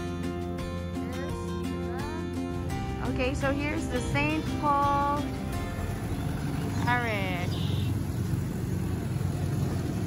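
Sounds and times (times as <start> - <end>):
motorcycles passing: 0.0 - 10.0
truck engine: 0.0 - 10.0.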